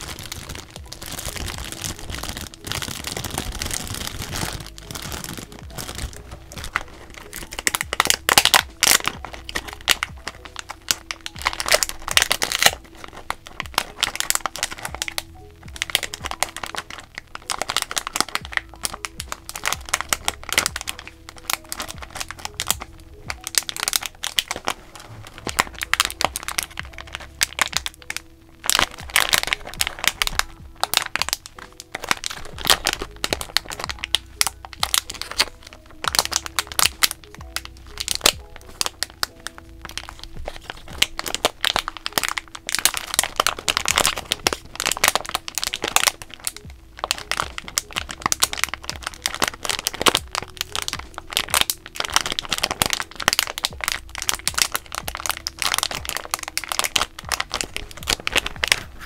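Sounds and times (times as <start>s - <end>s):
plastic bags crinkling: 0.0s - 59.0s
soft lo-fi hip-hop music: 0.0s - 59.0s.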